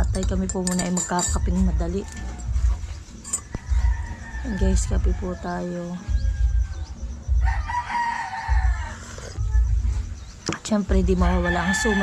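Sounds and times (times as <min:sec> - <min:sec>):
rooster crowing: 0:07.4 - 0:09.3, 0:11.4 - 0:12.0.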